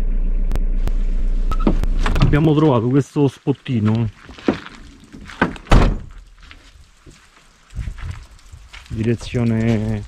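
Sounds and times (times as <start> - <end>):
vehicle door shutting with thunk: 5.4 - 6.1.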